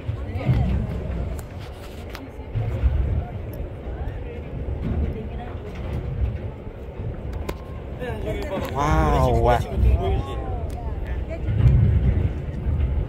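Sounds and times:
faint voices talking: 0:00.0 - 0:13.0
wind buffeting microphone: 0:00.0 - 0:13.0.

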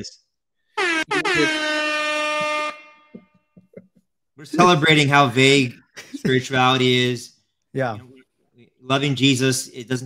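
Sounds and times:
air horn blasts: 0:00.8 - 0:03.3.

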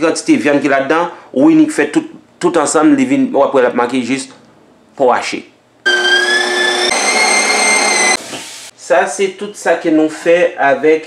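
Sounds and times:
meat grinder motor whine: 0:05.9 - 0:08.6.

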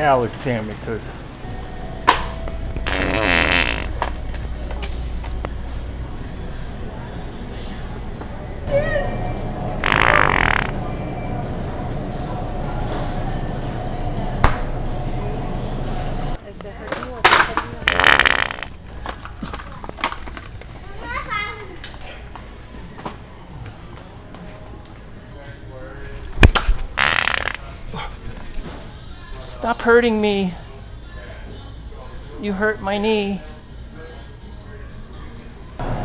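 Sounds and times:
wet fart sound: 0:02.8 - 0:04.0, 0:09.8 - 0:10.8, 0:17.8 - 0:18.7, 0:27.0 - 0:27.6.

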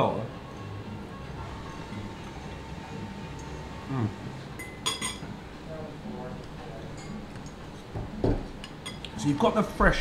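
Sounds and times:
faint conversation: 0:02.9 - 0:04.3, 0:05.3 - 0:08.5
cutlery clinking on plate: 0:04.6 - 0:05.3, 0:08.6 - 0:09.1.

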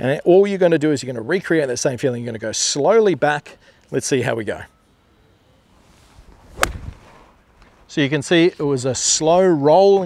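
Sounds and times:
club swishing through air: 0:05.9 - 0:07.3
golf club striking ball: 0:06.4 - 0:07.1.

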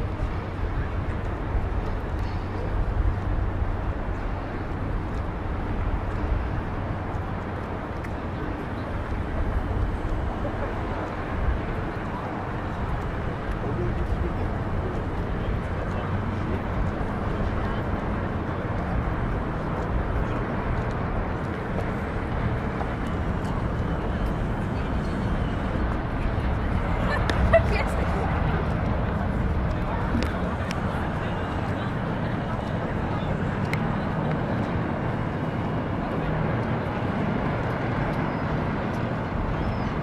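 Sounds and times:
passers-by talking: 0:00.0 - 0:40.0
steady low rumble: 0:00.0 - 0:40.0.

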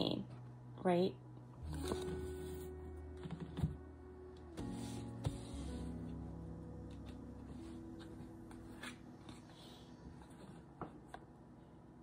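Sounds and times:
soft background music: 0:00.0 - 0:10.8.

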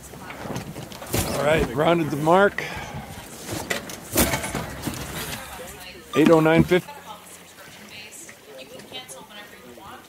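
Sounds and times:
water noise: 0:00.0 - 0:10.0
wind: 0:00.0 - 0:10.0.

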